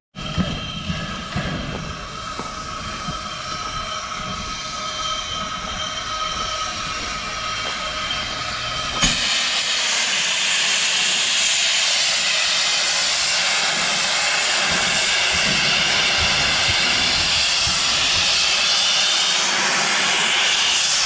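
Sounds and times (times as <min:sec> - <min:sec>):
steam hissing from safety valve: 0:00.2 - 0:21.0.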